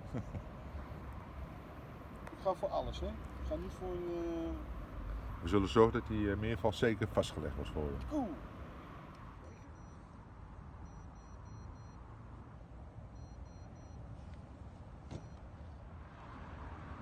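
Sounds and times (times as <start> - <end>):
electronic alarm beeping: 10.8 - 12.0, 13.1 - 14.0.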